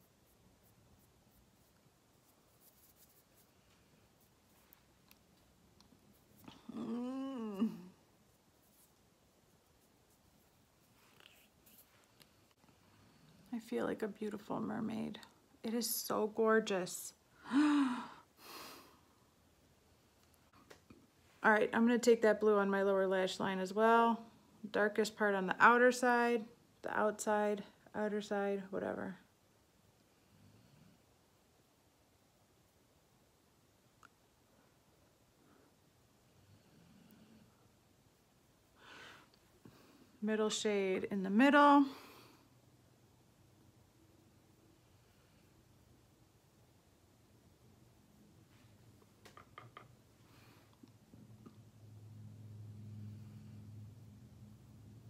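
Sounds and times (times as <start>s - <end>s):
fingertip rubbing on skin: 0.0s - 4.8s
woman's voice: 13.5s - 17.2s, 21.4s - 29.2s, 40.2s - 42.0s.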